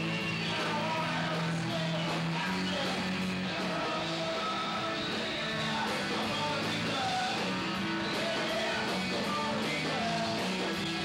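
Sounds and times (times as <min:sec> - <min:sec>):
electric guitar: 0:00.0 - 0:11.0
live rock band playing: 0:00.0 - 0:11.0.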